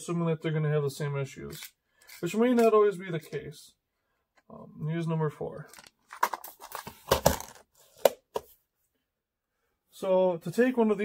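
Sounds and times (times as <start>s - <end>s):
plastic box rattling: 5.7s - 7.7s.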